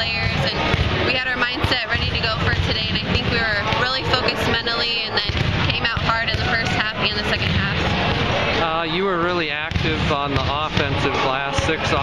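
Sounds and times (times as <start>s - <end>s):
woman talking: 0.0s - 7.9s.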